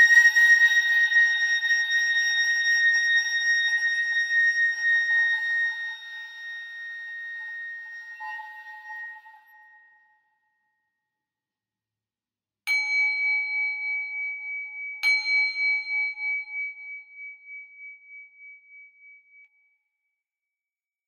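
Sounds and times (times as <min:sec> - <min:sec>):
bowl bell ringing: 0:12.7 - 0:18.6.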